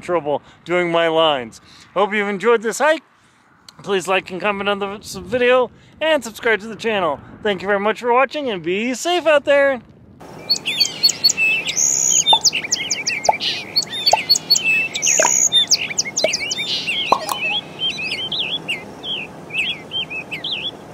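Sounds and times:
songbirds chirping and whistling: 10.3s - 20.9s.

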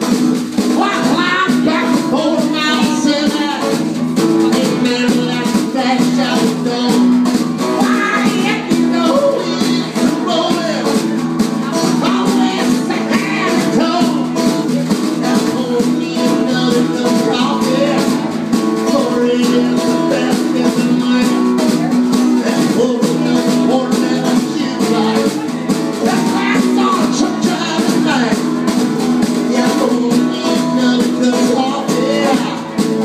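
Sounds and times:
country band playing: 0.0s - 33.0s
person singing: 0.0s - 33.0s.

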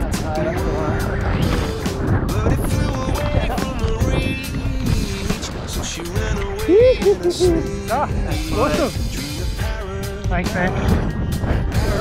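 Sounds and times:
song with gliding sung melody: 0.0s - 12.0s
steady low accompaniment: 0.0s - 12.0s.

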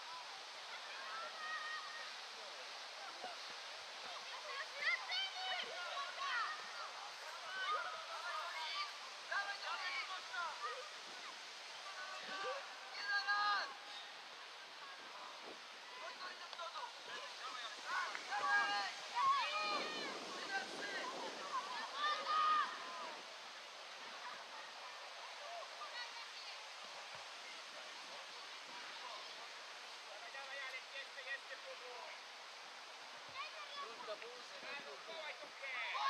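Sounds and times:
steady background hiss: 0.0s - 36.0s
distant shouts of players: 17.2s - 23.5s.

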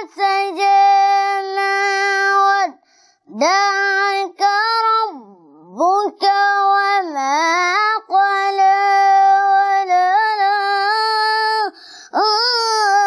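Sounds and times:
boy chanting recitation: 0.0s - 13.0s.

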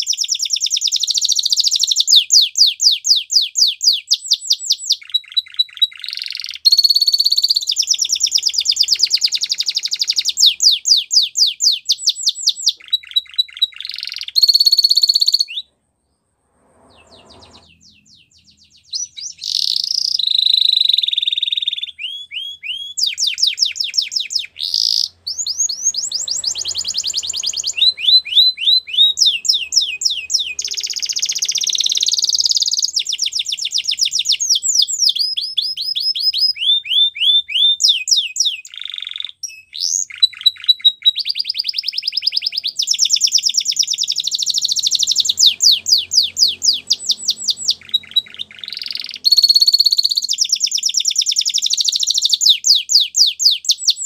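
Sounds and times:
canary singing: 0.0s - 15.8s, 16.8s - 54.0s.

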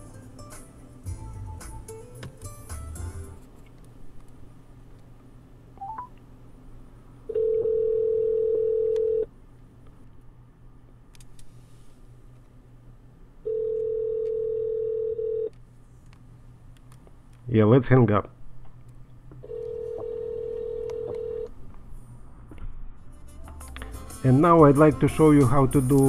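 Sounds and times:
telephone ringback tone: 7.3s - 9.3s, 13.4s - 15.5s, 19.4s - 21.5s.

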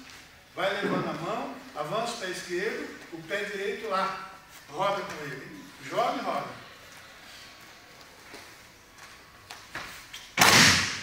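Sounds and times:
feet and cloth rustling on mat: 0.0s - 10.4s.

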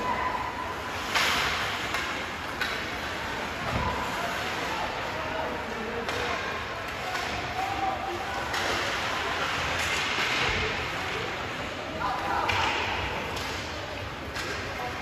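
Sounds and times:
sticks and puck clacking: 0.0s - 11.2s, 12.2s - 15.0s
skates scraping ice: 0.0s - 11.6s.

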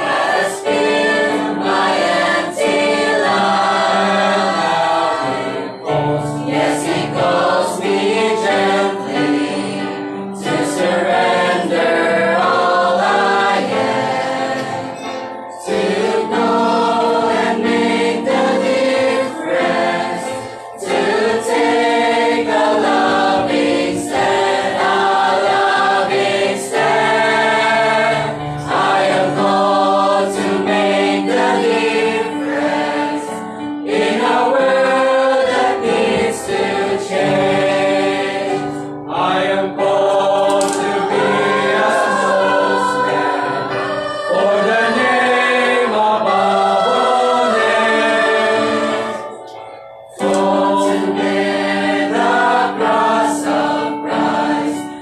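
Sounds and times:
choir singing a hymn: 0.0s - 55.0s.

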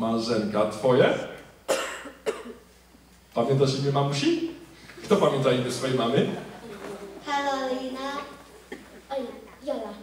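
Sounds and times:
person coughing: 1.7s - 2.7s.

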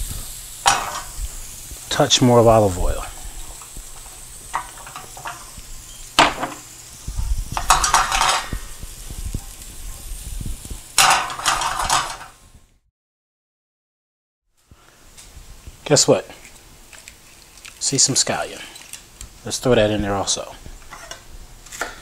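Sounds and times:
vegetables rattling in a pan: 0.0s - 2.0s, 2.6s - 12.5s, 16.4s - 19.2s
vegetables sizzling in oil: 0.0s - 12.6s, 14.8s - 22.0s.

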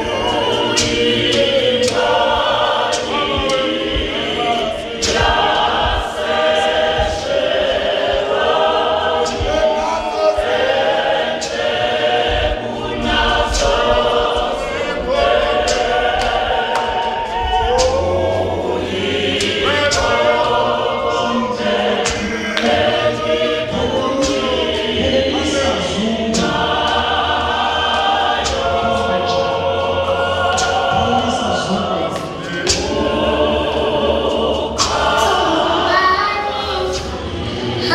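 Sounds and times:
choir singing a hymn: 0.0s - 37.9s
sharp percussive strokes: 0.0s - 37.9s.

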